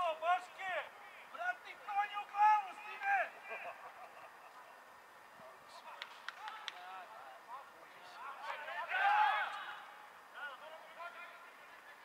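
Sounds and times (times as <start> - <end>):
distant voices shouting: 8.3 - 11.5.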